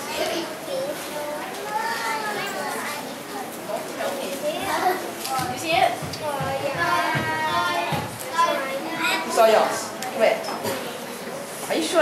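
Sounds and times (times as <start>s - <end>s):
children talking over one another: 0.0s - 12.0s.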